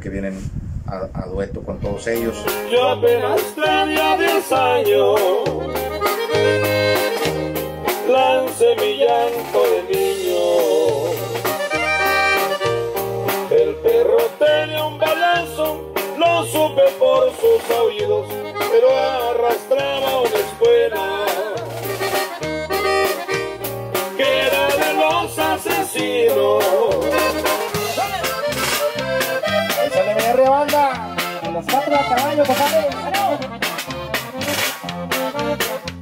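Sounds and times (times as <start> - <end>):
two-note bass line: 2.0 - 36.0
accordion melody: 2.2 - 36.0
guitar strumming: 2.2 - 36.0.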